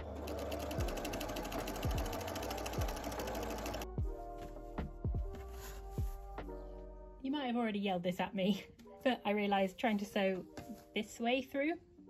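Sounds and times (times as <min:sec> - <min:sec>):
sewing machine stitching: 0:00.0 - 0:03.8.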